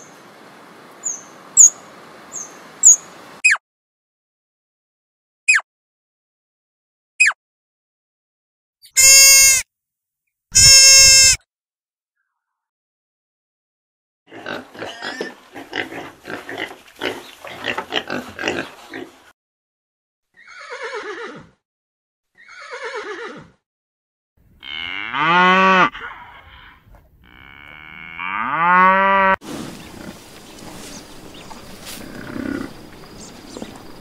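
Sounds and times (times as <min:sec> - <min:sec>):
short loud animal calls: 0:09.0 - 0:09.6, 0:10.6 - 0:11.4
pig grunting: 0:14.3 - 0:19.2, 0:29.5 - 0:30.2, 0:31.9 - 0:32.9
cow mooing: 0:24.6 - 0:29.4.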